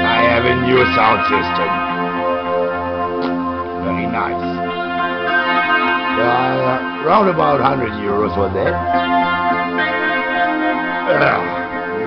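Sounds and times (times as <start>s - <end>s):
sustained chords from loudspeakers: 0.0s - 12.0s.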